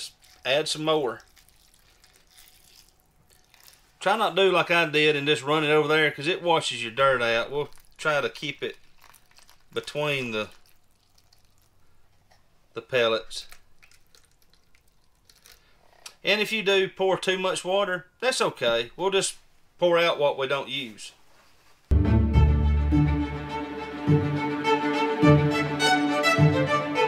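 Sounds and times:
water trickling from jug: 0.0 - 4.0, 7.6 - 12.1, 13.4 - 15.7.

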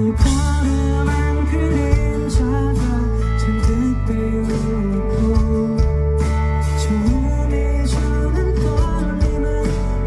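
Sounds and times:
bass and drums: 0.0 - 10.0
electric guitar: 0.0 - 10.0
man singing: 0.0 - 10.0.

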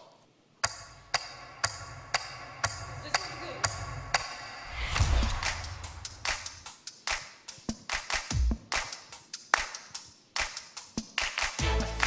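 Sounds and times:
sharp percussion hits: 1.2 - 6.8
low bass pulse: 4.7 - 6.6.

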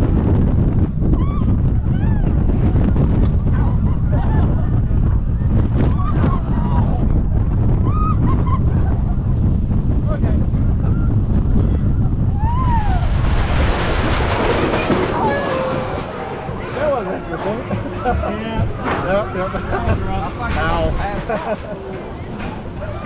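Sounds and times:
roller coaster rumbling on track: 0.0 - 23.0
wind buffeting microphone: 0.0 - 23.0.

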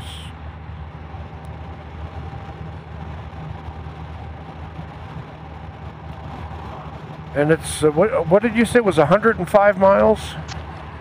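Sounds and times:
motorcycle engine running: 0.0 - 11.0
wind and road noise: 0.0 - 11.0.

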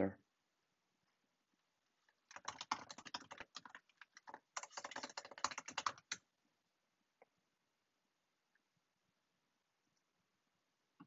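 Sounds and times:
typing on computer keyboard: 2.3 - 6.2.

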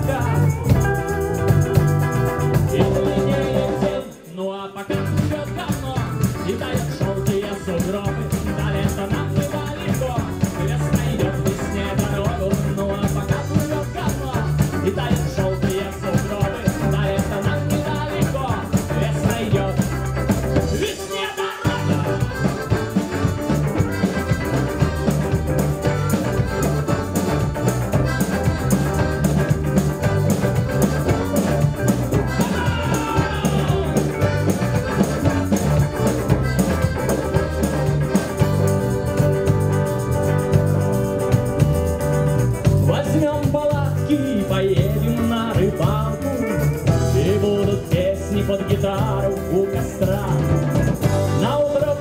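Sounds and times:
accordion: 0.0 - 52.0
rock band playing: 0.0 - 52.0
tambourine shaken: 0.0 - 52.0.

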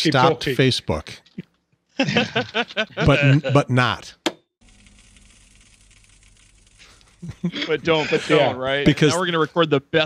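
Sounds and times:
steady low hum: 4.6 - 9.2.

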